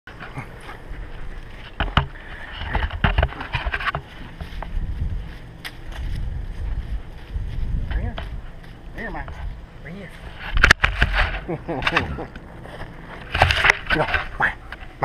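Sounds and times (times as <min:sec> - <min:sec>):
camera handling rumble: 0:00.1 - 0:09.6, 0:10.2 - 0:15.0.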